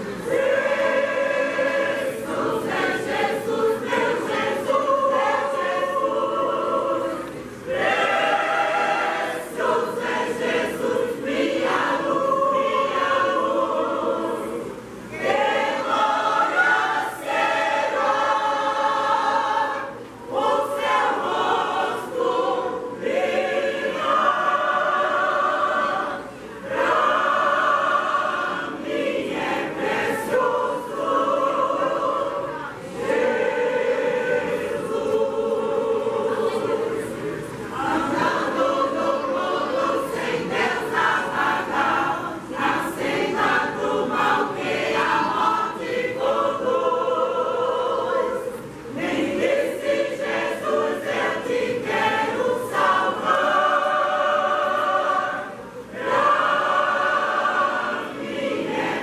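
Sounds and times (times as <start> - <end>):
mixed choir singing a hymn: 0.0 - 59.0.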